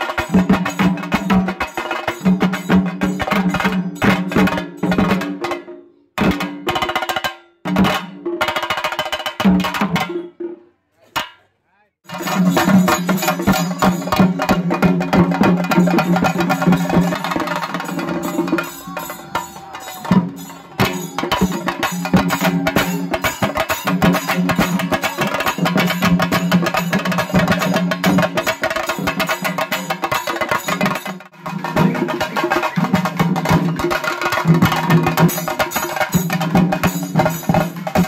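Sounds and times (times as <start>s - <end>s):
drum ensemble playing rolls: 12.1s - 38.0s.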